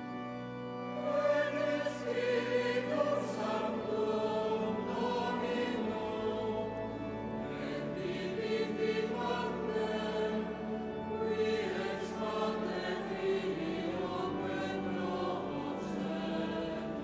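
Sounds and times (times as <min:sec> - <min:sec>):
choir singing sacred music: 0:00.0 - 0:17.0.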